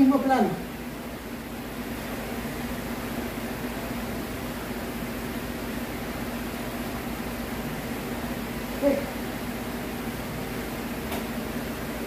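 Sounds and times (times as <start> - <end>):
mechanical room hum and hiss: 0.0 - 12.0.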